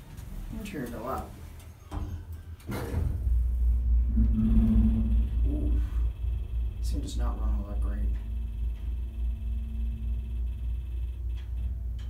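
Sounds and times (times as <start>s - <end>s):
hydraulic elevator pump motor: 0.0s - 12.0s.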